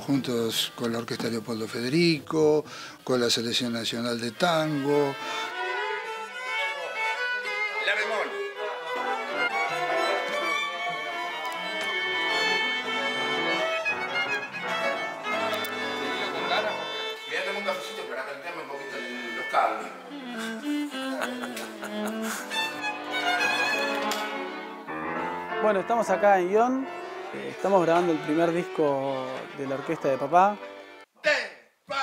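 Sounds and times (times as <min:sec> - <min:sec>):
string section playing tango: 0:02.7 - 0:31.1.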